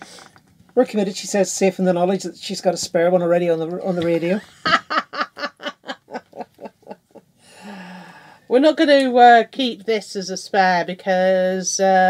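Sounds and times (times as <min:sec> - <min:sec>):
woman laughing: 0:03.9 - 0:07.2.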